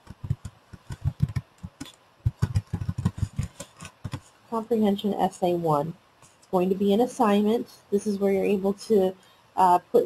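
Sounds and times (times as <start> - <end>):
typing on computer keyboard: 0.0 - 4.2.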